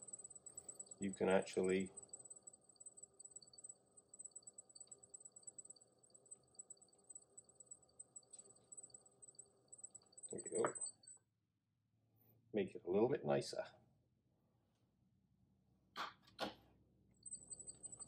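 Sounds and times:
faint high-pitched pulsing trill: 0.0 - 11.2, 17.1 - 18.0.

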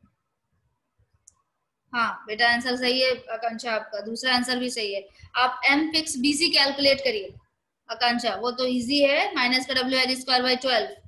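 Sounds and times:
woman's voice: 2.0 - 11.0.

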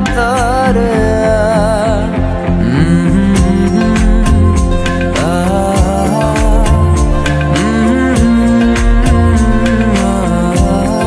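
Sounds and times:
guitar: 0.0 - 11.0
man humming: 1.2 - 11.0
steady drum beat: 2.6 - 11.0.

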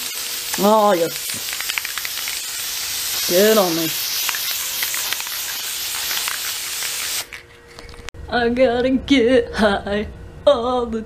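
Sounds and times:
spray paint can hissing: 0.0 - 7.4.

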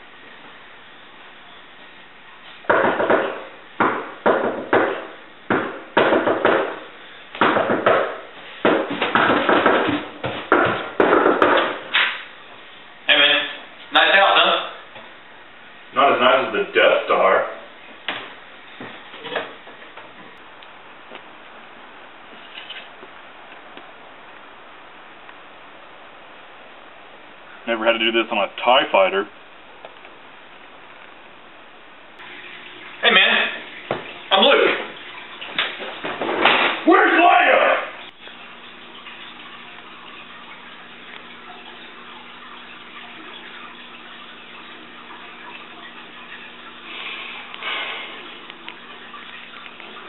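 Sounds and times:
low electrical hum: 0.0 - 50.0
sharp knocks: 2.7 - 12.2
loud person's voice: 36.8 - 38.0.

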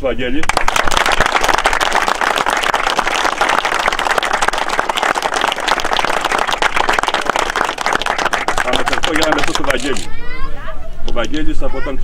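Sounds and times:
people applauding: 0.4 - 10.1.

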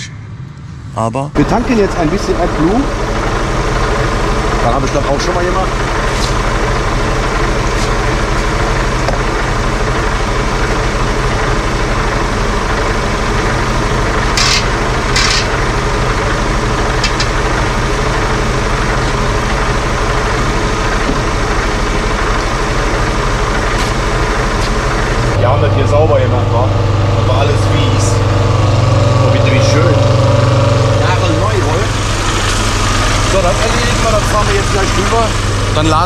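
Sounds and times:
diesel engine idling: 1.1 - 36.0.

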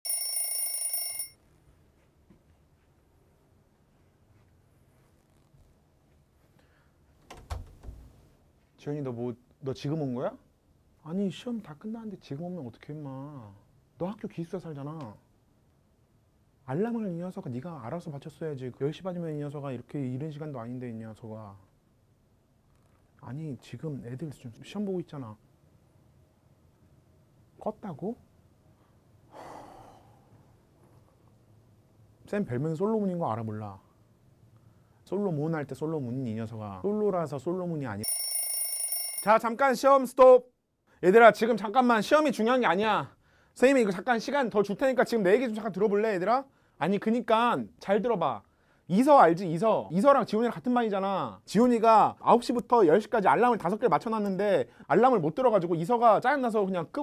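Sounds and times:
shrill alarm ringing: 0.0 - 1.4, 38.0 - 39.4
man exhaling sharply: 29.3 - 30.3.

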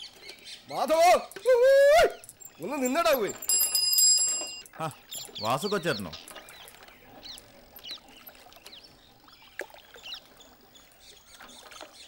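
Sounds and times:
person speaking: 2.6 - 3.5, 4.7 - 6.2.

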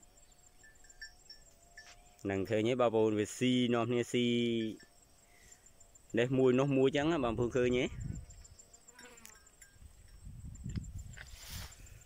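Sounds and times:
faint insect chirps: 0.0 - 12.0
insects chirring: 0.0 - 12.0.

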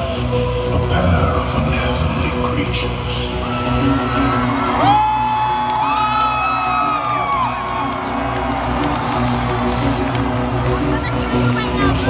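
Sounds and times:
electronic music over pa: 0.0 - 12.0
crowd whooping and cheering: 3.4 - 12.0.

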